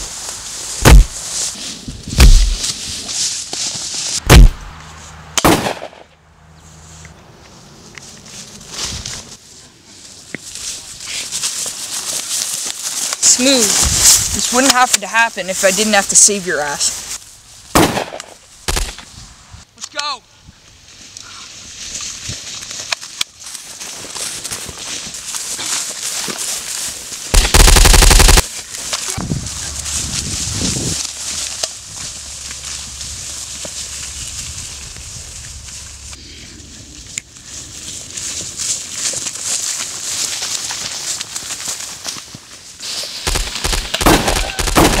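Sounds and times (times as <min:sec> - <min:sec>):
steady rushing noise: 0:00.0 - 0:06.2
gunshots: 0:00.8 - 0:01.2, 0:02.2 - 0:02.6, 0:04.2 - 0:04.7, 0:05.4 - 0:06.0, 0:17.8 - 0:19.0, 0:27.3 - 0:28.5, 0:43.2 - 0:45.0
automatic gunfire: 0:05.4 - 0:06.0, 0:17.8 - 0:19.0, 0:27.3 - 0:28.5, 0:43.3 - 0:45.0
people shouting: 0:44.2 - 0:45.0.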